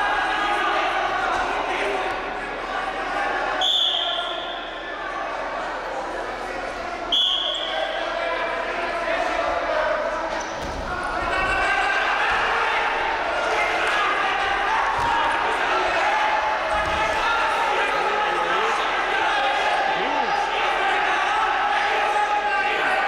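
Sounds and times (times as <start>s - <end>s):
people shouting in a hall: 0.0s - 23.0s
referee's whistle: 3.6s - 4.7s, 7.1s - 8.0s.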